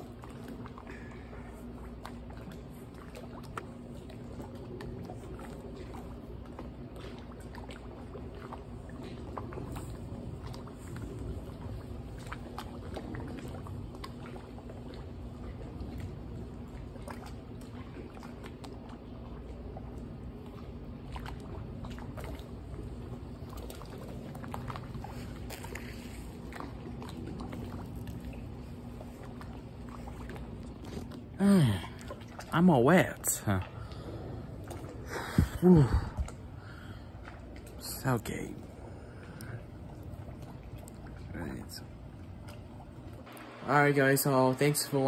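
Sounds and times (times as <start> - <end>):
small splashes and drips: 0.0 - 45.0
steady low hum: 0.0 - 45.0
water sloshing in a pool: 0.0 - 45.0.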